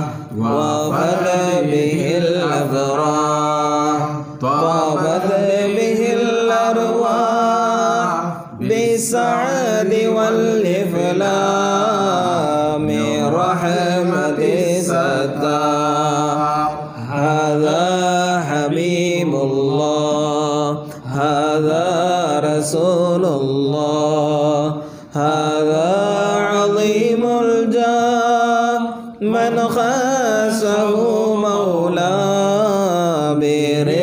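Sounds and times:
person chanting: 0:00.0 - 0:34.0.

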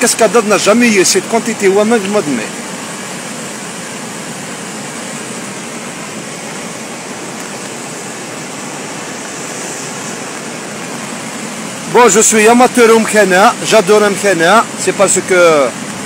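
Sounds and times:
waterfall rushing: 0:00.0 - 0:16.0.

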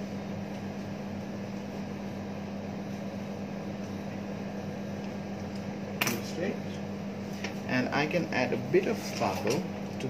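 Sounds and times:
ceiling fan hissing: 0:00.0 - 0:10.0
low electrical hum: 0:00.0 - 0:10.0.

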